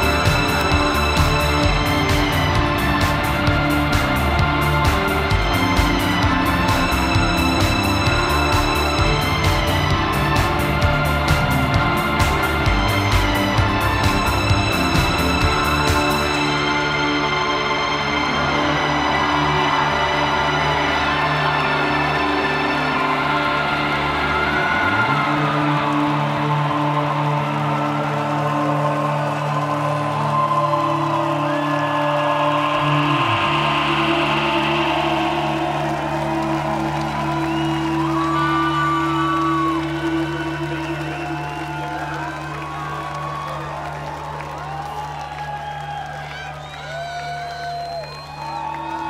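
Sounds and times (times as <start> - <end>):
synthesizer held chords: 0.0 - 44.9
crowd whooping and cheering: 0.0 - 49.0.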